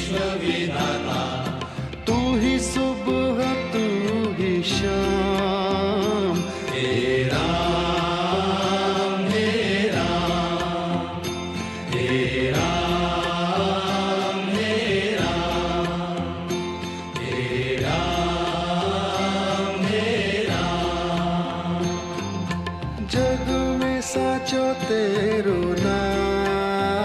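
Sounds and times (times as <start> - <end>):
chant-like singing: 0.0 - 27.0
instrumental accompaniment: 0.0 - 27.0.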